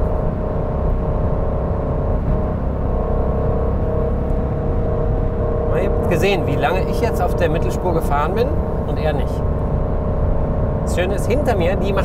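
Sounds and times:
car engine drone from cabin: 0.0s - 12.0s
low road rumble: 0.0s - 12.0s.

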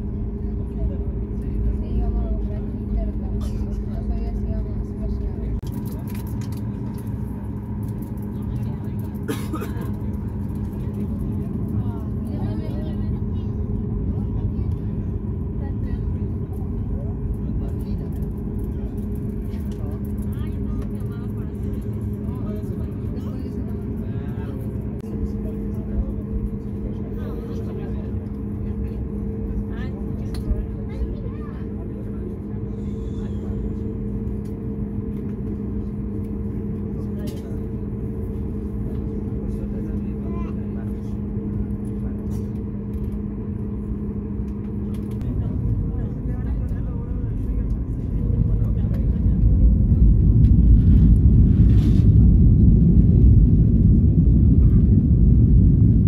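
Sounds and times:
aircraft cabin hum: 0.0s - 56.0s
faint passenger voices murmuring: 0.0s - 56.0s.

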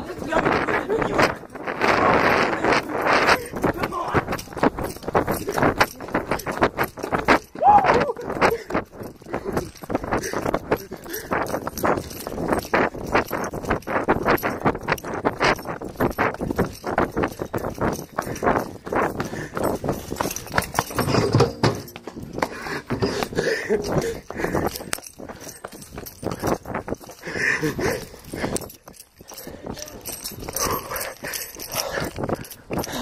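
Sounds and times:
running footsteps on concrete: 0.0s - 33.0s.

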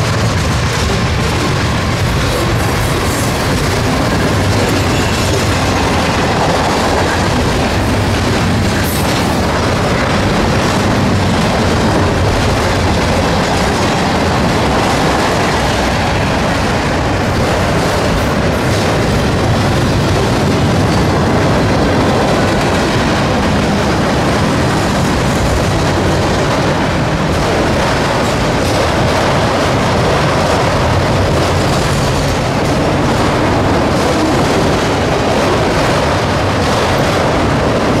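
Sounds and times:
freight train cars rolling: 0.0s - 38.0s.

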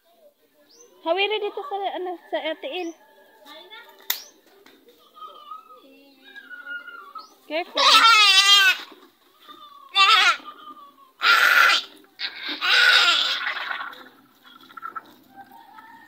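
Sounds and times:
goat bleating in distress: 7.7s - 8.9s, 9.5s - 10.6s, 11.2s - 13.6s.

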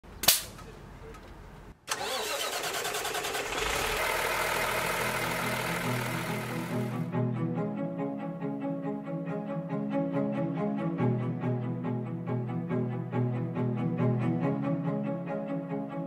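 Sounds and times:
sharp click: 0.2s - 0.7s
truck engine cranking and starting: 1.8s - 7.1s
music: 5.6s - 16.0s.

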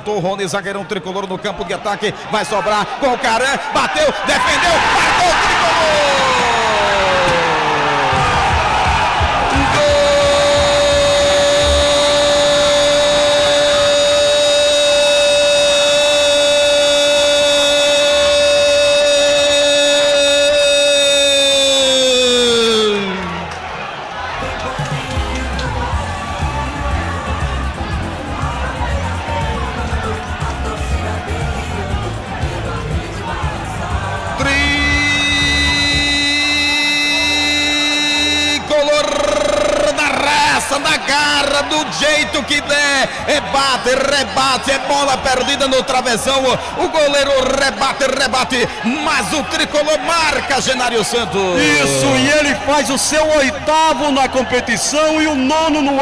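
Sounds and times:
stadium crowd cheering: 0.0s - 56.0s
narrator's drawn-out goal cry: 9.4s - 23.3s, 51.3s - 52.9s.

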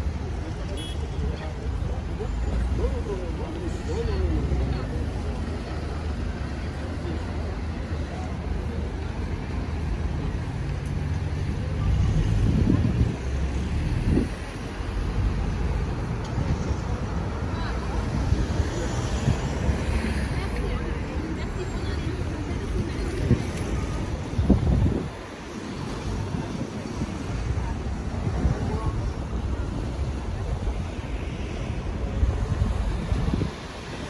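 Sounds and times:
bus passing: 0.0s - 34.0s
passers-by talking: 0.0s - 34.0s
traffic engine drone: 0.0s - 34.0s.

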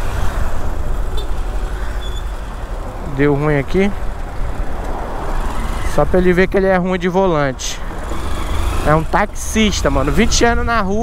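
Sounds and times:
road and wind noise: 0.0s - 11.0s.

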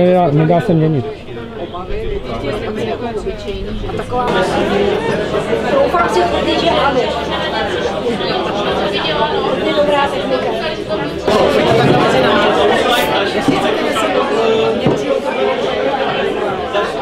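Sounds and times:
babble of conversation: 0.0s - 17.0s.

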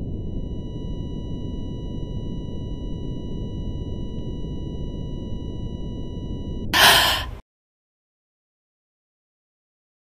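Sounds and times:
sharp gasp: 6.8s - 7.4s.

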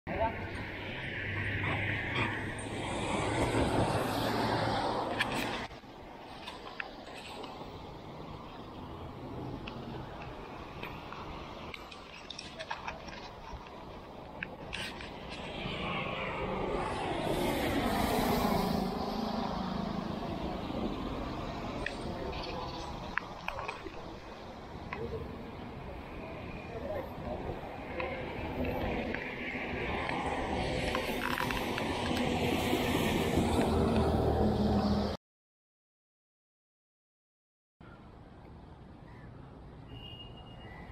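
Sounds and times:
vehicle passing by: 0.5s - 5.7s, 15.3s - 23.0s, 26.6s - 35.2s.

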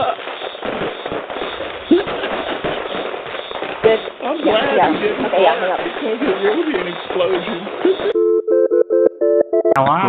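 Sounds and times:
fireworks crackling and popping: 0.0s - 8.2s.

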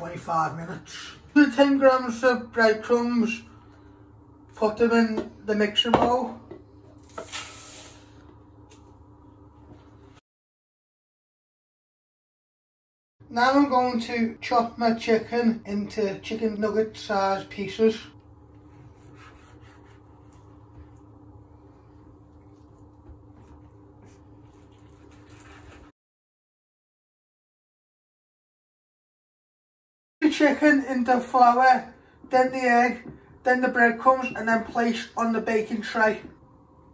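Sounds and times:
steady low hum: 0.0s - 10.2s, 13.2s - 25.9s.

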